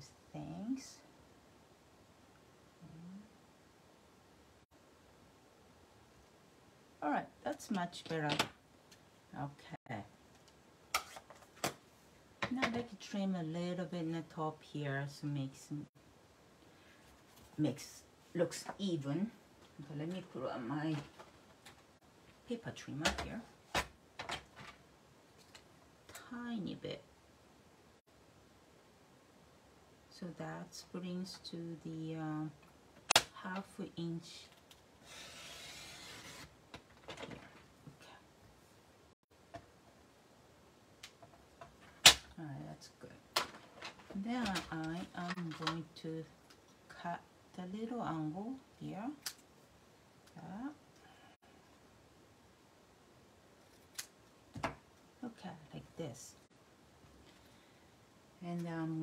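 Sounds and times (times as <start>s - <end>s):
paper trimmer blade rasping: 35.1s - 36.5s.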